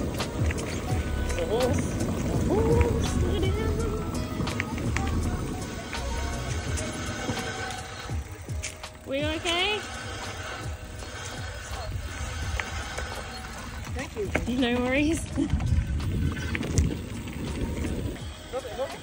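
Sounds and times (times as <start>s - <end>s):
wind on microphone: 0.0s - 8.6s, 9.3s - 19.0s
bike rolling on gravel: 0.0s - 19.0s.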